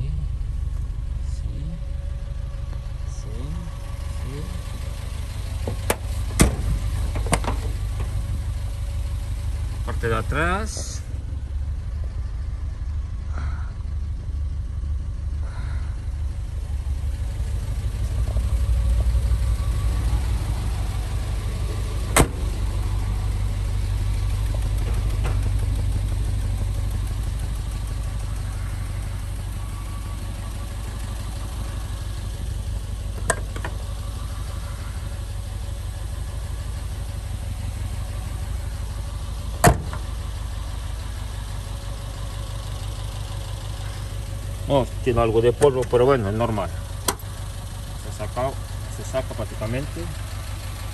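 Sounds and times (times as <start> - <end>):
car engine idling: 0.0 - 50.9.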